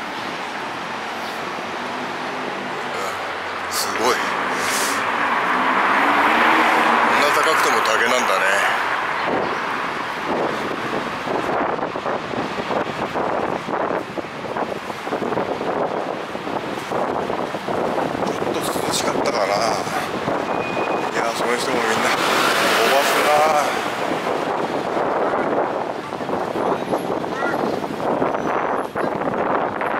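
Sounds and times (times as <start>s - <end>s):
traffic noise: 0.0s - 29.9s
passers-by talking: 1.1s - 14.0s, 16.7s - 29.9s.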